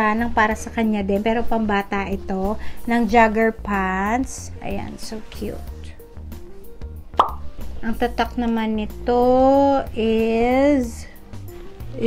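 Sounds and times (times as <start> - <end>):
music with steady beat: 3.6 - 12.0
short pop: 7.2 - 7.5.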